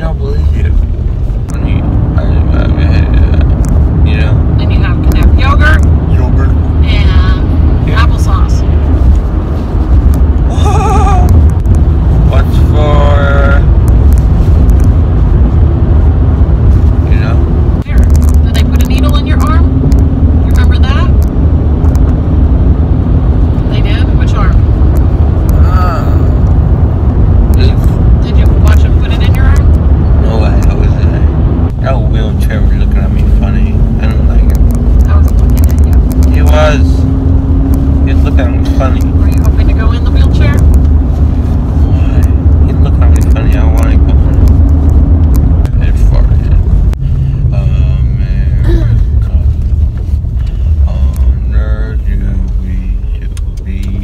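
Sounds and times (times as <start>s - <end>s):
car cabin road and engine rumble: 0.0s - 54.0s.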